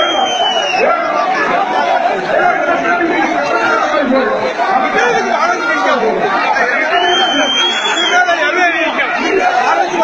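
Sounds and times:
crowd talking and calling: 0:00.0 - 0:10.0.

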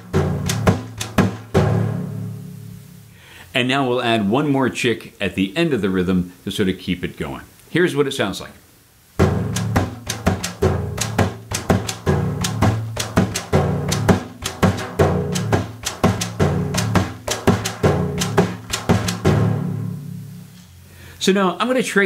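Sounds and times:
frame drum played by hand: 0:00.0 - 0:03.0, 0:09.2 - 0:20.5.

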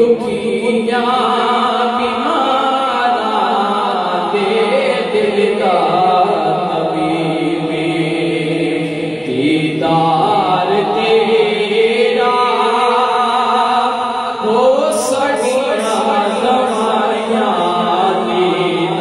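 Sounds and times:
man singing unaccompanied: 0:00.0 - 0:19.0.

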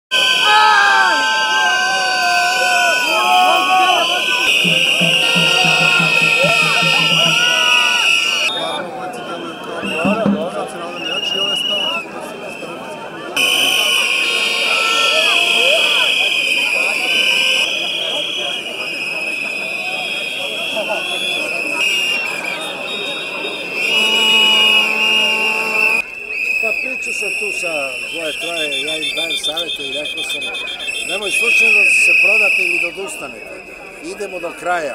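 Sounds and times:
shrill protest whistles: 0:02.6 - 0:12.8, 0:13.4 - 0:34.9
low horn-like note: 0:04.6 - 0:07.9, 0:09.8 - 0:10.9.

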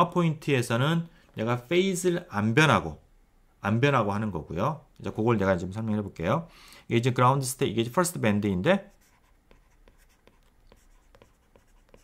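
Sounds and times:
stylus tapping on tablet screen: 0:09.5 - 0:12.0.

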